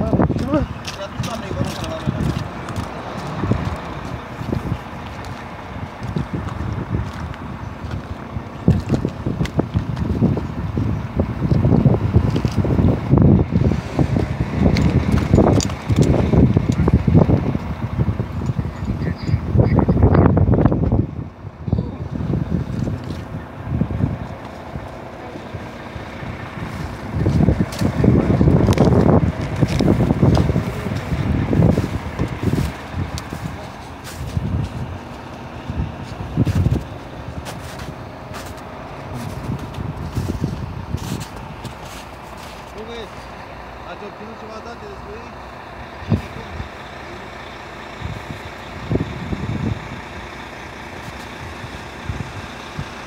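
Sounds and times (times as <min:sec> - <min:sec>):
wind buffeting microphone: 0:00.0 - 0:53.0.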